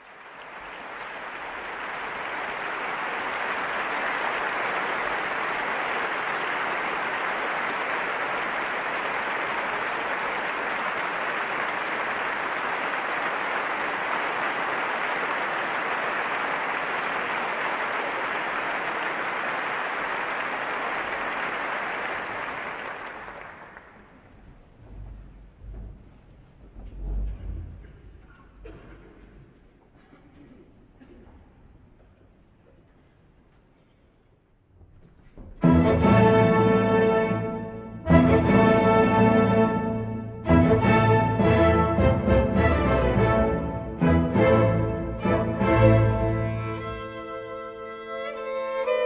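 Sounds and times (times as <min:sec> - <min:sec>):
audience applauding: 0:00.0 - 0:24.4.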